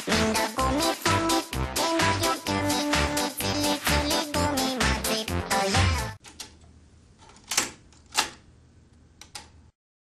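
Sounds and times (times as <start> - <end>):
music: 0.0 - 6.2.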